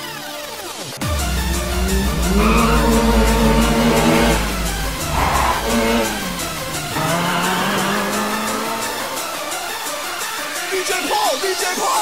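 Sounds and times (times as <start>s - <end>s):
race car engine revving: 1.0s - 10.0s.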